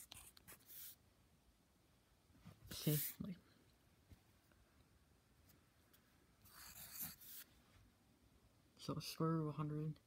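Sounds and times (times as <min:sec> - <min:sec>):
pencil scratching on paper: 0:00.0 - 0:01.0, 0:06.4 - 0:07.5.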